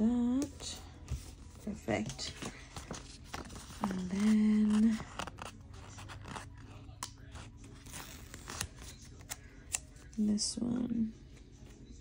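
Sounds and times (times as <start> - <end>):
paper rustling: 0.9 - 9.9.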